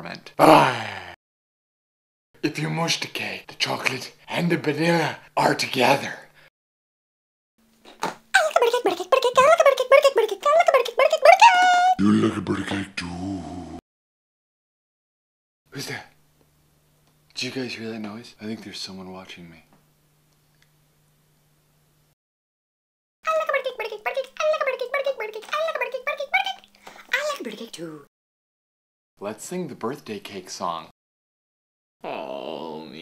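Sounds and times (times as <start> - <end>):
high-pitched voice chattering: 8.4 - 12.4, 23.3 - 26.6.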